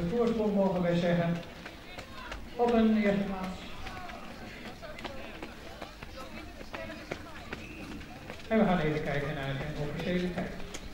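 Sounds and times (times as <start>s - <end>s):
faint voices: 0.0s - 10.9s
footsteps on running track: 0.0s - 10.9s.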